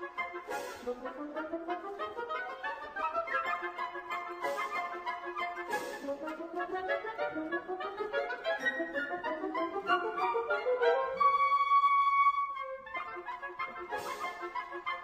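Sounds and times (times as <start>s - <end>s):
classical instrumental music: 0.0s - 15.0s.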